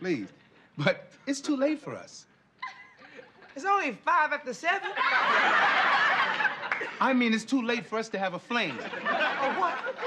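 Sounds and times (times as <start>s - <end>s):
studio audience laughing: 4.7s - 7.3s, 8.6s - 10.0s.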